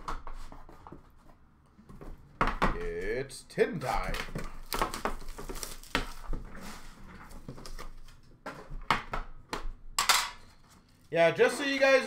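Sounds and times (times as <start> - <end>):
metal tin clanks and knocks: 10.0 - 10.4.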